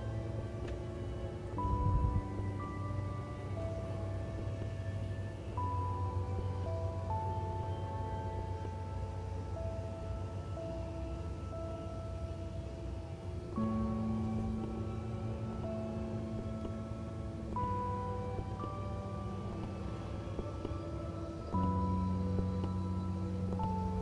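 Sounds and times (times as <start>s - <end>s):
calm instrumental music: 0.0s - 24.0s.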